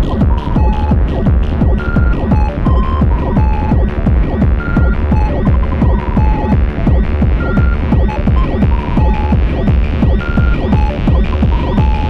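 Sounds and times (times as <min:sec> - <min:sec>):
heavy bass: 0:00.0 - 0:12.0
rapid kick drum: 0:00.0 - 0:12.0
short synth bleeps: 0:04.6 - 0:09.4.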